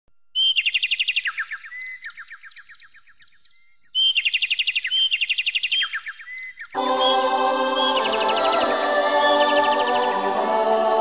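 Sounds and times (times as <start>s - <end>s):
songbird trilling: 3.9s - 6.7s.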